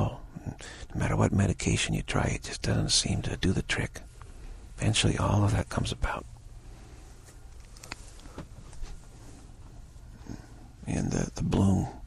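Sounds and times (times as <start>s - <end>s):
man speaking: 0.0s - 4.1s, 4.8s - 6.3s, 10.8s - 12.0s
low room hum: 0.0s - 12.0s.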